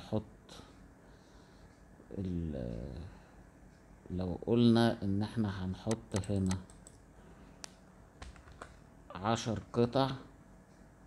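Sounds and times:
keyboard and mouse clicks: 0:05.9 - 0:07.0.

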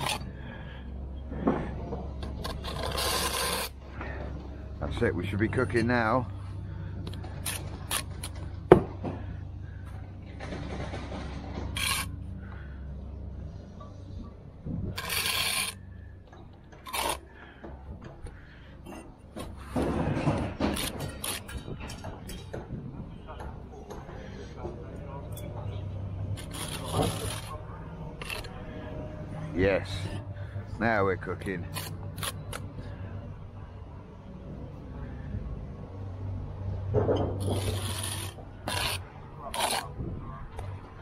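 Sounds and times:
trowel scraping mortar: 0:00.0 - 0:00.2, 0:02.3 - 0:03.8, 0:11.7 - 0:12.2, 0:15.0 - 0:15.8, 0:16.8 - 0:17.3, 0:20.5 - 0:21.6, 0:26.4 - 0:27.6, 0:28.2 - 0:28.5, 0:31.6 - 0:32.7, 0:37.4 - 0:40.0
low hum: 0:00.0 - 0:41.0.

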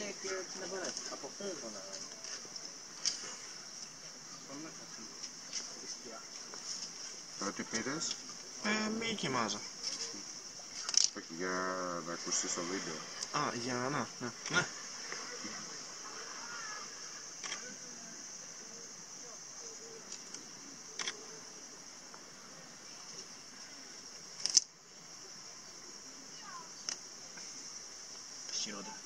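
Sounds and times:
cicadas buzzing: 0:00.0 - 0:29.0
faint distant voices: 0:00.0 - 0:29.0.

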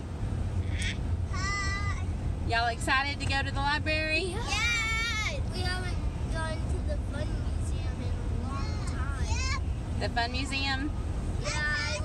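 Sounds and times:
low rumble of van cabin: 0:00.0 - 0:12.0.

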